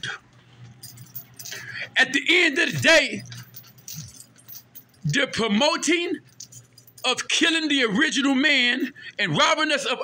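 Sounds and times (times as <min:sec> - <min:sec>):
low steady hum: 0:00.0 - 0:10.0
metallic jingling and clicking: 0:00.6 - 0:07.5.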